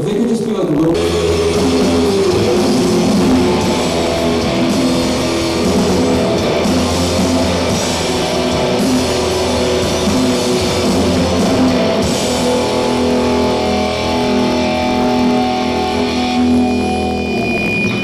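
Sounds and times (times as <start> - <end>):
rock band distorted guitars: 0.0 - 18.0.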